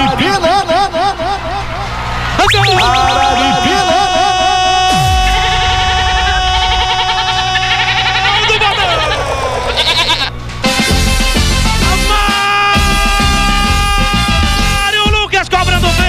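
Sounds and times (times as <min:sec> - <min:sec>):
loud background music: 0:10.6 - 0:16.0.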